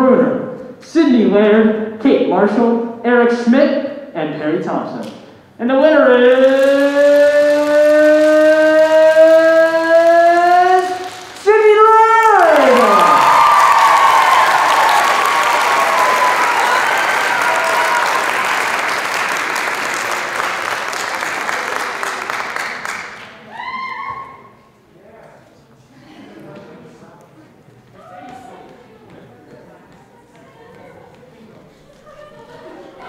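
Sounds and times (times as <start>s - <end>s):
audience applause and cheering: 6.2s - 24.2s.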